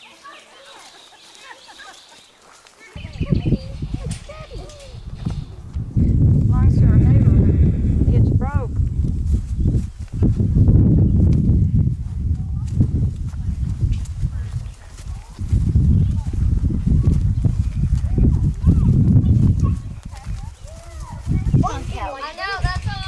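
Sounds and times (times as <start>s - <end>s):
hooves on grass: 0.0s - 23.0s
loud uneven low rumble: 3.0s - 9.5s.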